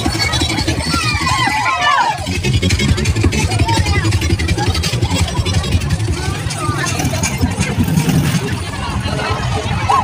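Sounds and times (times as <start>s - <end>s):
crowd voices: 0.0s - 10.0s
low rumble: 0.0s - 10.0s.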